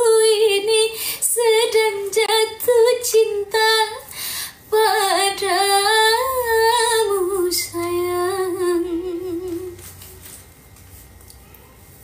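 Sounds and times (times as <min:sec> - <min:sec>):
woman singing unaccompanied: 0:00.0 - 0:04.1, 0:04.7 - 0:10.0.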